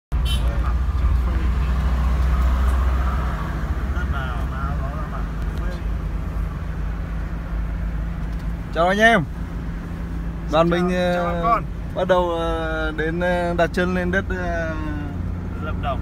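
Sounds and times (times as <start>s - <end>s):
road and engine rumble in car: 0.1s - 16.0s.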